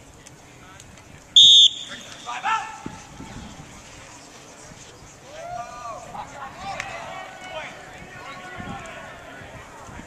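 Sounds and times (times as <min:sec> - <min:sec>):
sports whistle blast: 0:01.4 - 0:02.4.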